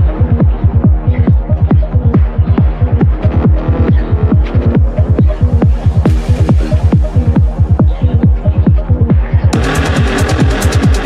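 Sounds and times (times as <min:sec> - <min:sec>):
deep kick and bass beat: 0:00.0 - 0:11.0
sustained synth chords: 0:00.0 - 0:11.0.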